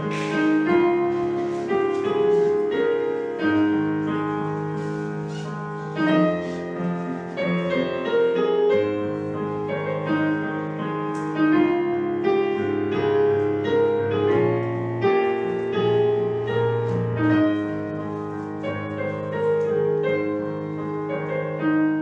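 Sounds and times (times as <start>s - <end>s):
slow piano music: 0.0s - 22.0s.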